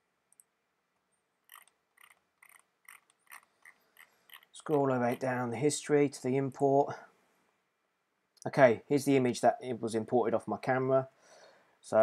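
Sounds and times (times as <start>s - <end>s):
computer mouse clicks: 1.5s - 4.9s
scroll wheel ticks: 1.5s - 5.3s.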